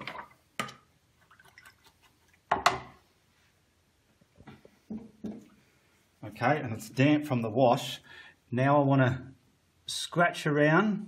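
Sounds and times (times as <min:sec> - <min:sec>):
paintbrush splashing in water jar: 0:01.2 - 0:02.5.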